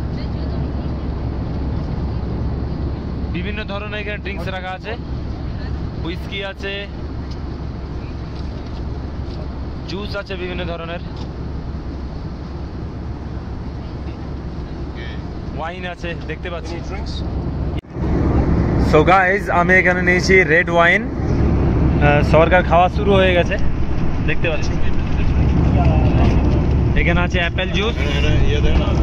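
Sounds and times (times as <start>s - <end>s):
airliner cabin rumble: 0.0s - 29.0s.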